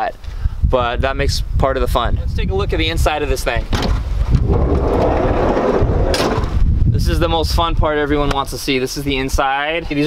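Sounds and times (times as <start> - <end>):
wind rumbling on microphone: 0.2 - 10.0
sliding door rolling open: 4.4 - 6.5.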